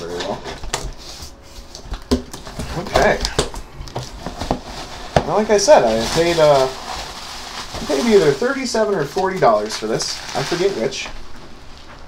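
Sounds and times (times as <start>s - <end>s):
cardboard rustling: 0.1s - 12.0s.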